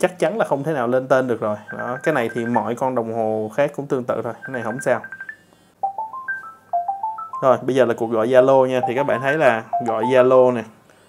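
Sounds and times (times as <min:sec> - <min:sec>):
electronic ringtone melody: 0:01.6 - 0:02.7, 0:04.4 - 0:10.6.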